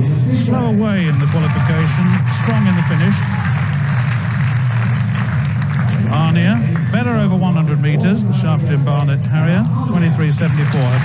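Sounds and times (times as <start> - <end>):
crowd murmuring: 0.0 - 11.0
steady low hum: 0.0 - 11.0.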